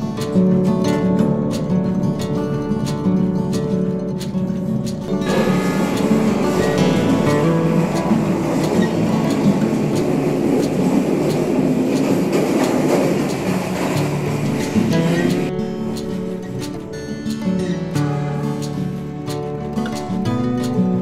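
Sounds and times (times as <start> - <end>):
acoustic guitar music: 0.0 - 21.0
train wheels clattering on rail: 0.0 - 21.0.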